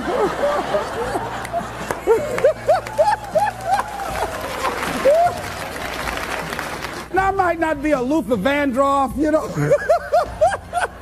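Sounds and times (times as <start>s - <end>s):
laughs and whoops: 0.0s - 5.5s
audience applauding: 0.4s - 7.1s.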